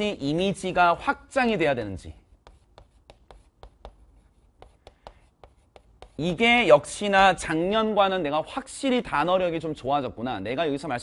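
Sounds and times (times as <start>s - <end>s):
chalk tapping and scratching on board: 2.2s - 6.5s.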